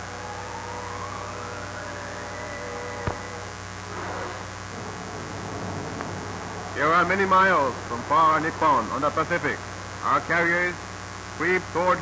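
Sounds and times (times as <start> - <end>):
film soundtrack hum and hiss: 0.0 - 12.0.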